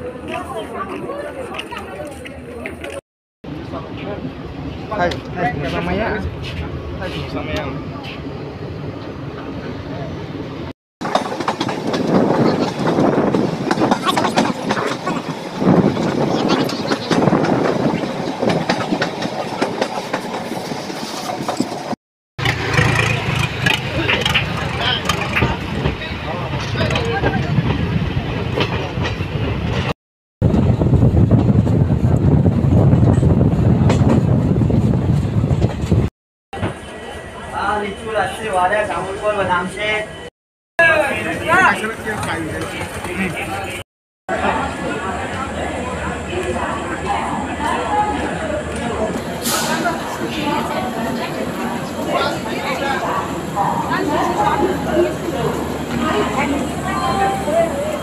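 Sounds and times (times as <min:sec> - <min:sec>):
train wheels rumbling and rattling: 0:03.7 - 0:37.0, 0:41.0 - 0:43.8.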